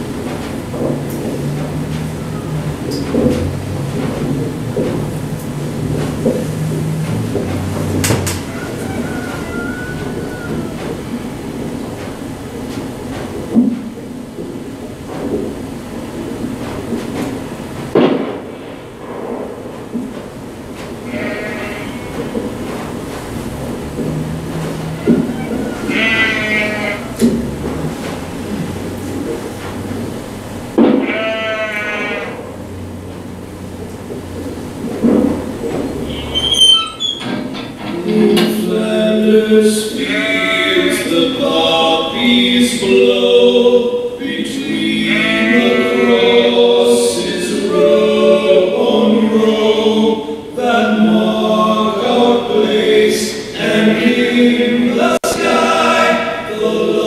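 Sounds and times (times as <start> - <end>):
quavering pitched calls: 21.0 - 22.3, 24.3 - 27.6, 31.0 - 32.5.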